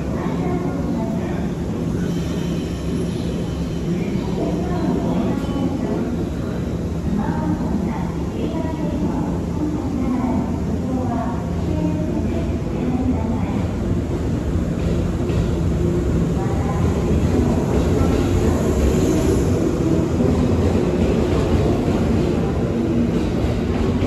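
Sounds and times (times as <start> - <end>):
train rumbling: 0.0 - 24.0.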